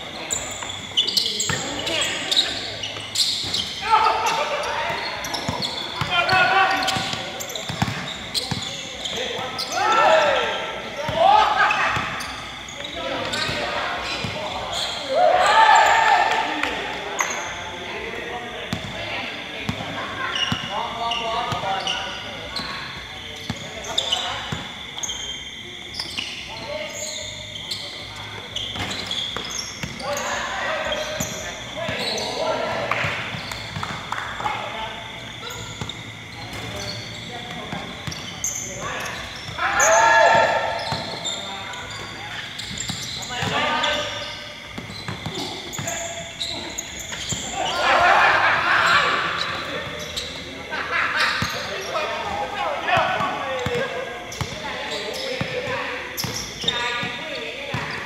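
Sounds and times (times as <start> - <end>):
players shouting: 0.2 - 17.8, 38.7 - 42.6, 45.2 - 56.0
basketball bouncing on court: 4.9 - 8.8, 28.8 - 30.0, 33.0 - 34.1, 42.6 - 43.7, 44.7 - 46.0.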